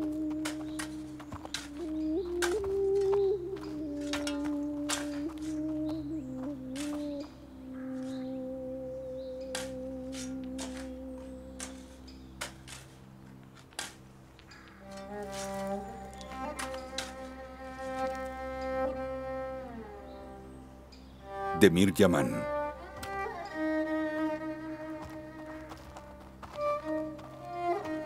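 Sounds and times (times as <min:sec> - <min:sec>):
slow bowed string music: 0:00.0 - 0:28.0.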